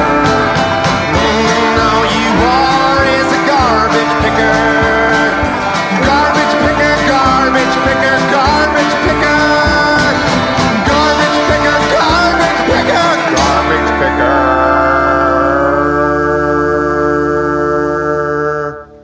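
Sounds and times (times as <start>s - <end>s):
country band playing: 0.0s - 19.0s.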